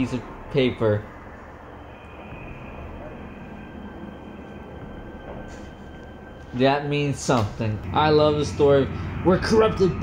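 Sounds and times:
low rumble: 0:00.0 - 0:10.0.

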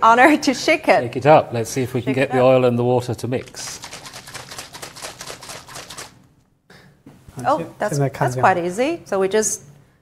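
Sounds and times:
plastic bottle of liquid shaken: 0:03.4 - 0:06.2.

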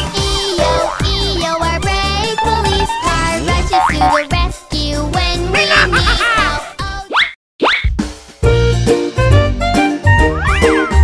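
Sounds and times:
upbeat children's music: 0:00.0 - 0:07.2, 0:08.0 - 0:11.0.

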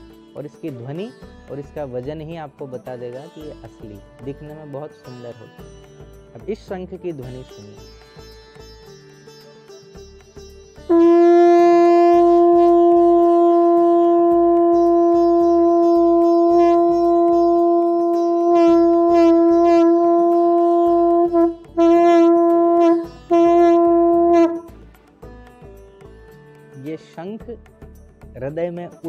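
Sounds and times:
conch shell horn blowing: 0:10.9 - 0:24.7.

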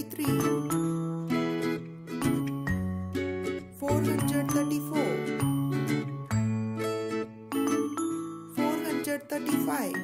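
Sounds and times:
bouncy children's music: 0:00.0 - 0:10.0.

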